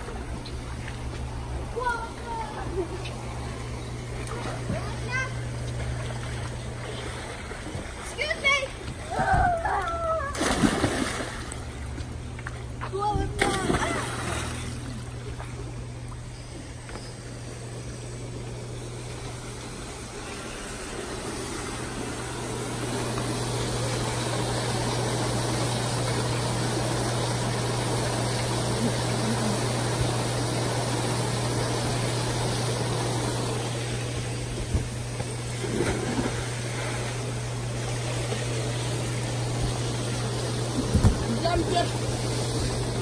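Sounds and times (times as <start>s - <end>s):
pump hum: 0.0s - 43.0s
bubbling rushing water: 18.9s - 43.0s.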